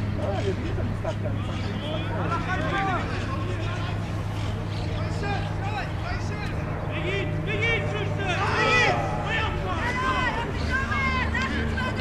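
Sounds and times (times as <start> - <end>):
distant players shouting: 0.2 - 12.0.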